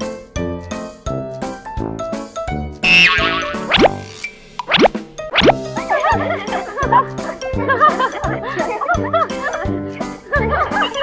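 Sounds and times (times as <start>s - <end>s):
bouncy children's music: 0.0s - 4.0s
rising swoop effect: 2.8s - 5.6s
wavering cartoon effect: 2.8s - 5.6s.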